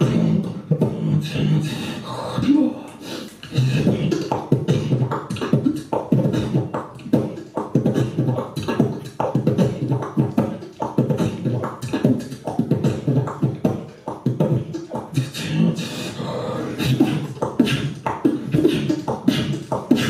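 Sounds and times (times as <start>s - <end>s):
beatboxing into a microphone: 0.0s - 20.0s.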